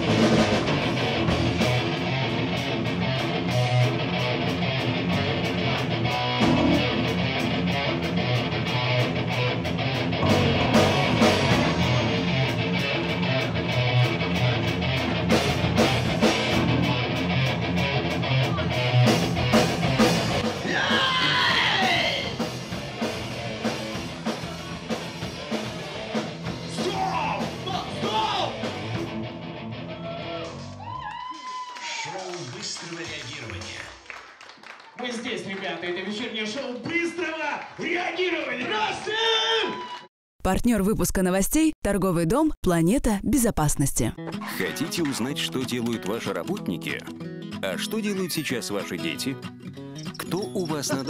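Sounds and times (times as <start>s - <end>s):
driving drum beat: 0.0s - 2.6s, 6.0s - 8.5s, 10.2s - 29.1s
live rock band playing: 0.0s - 29.9s.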